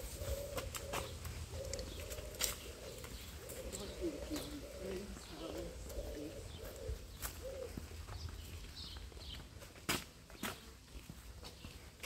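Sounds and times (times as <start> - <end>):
pigeon cooing: 0.0 - 7.9
boot footsteps on paving stones: 0.0 - 12.0.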